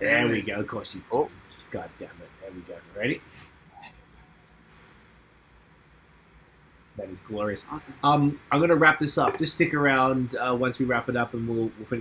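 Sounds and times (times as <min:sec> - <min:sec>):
faint hiss and hum: 0:00.0 - 0:12.0.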